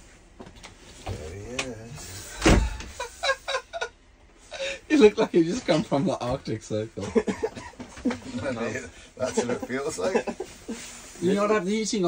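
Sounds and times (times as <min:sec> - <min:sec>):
loud thump: 0:02.4 - 0:03.0.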